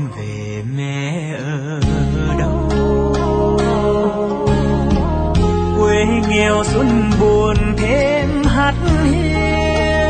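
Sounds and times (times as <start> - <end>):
slow ballad with vibrato melody: 0.0 - 10.0.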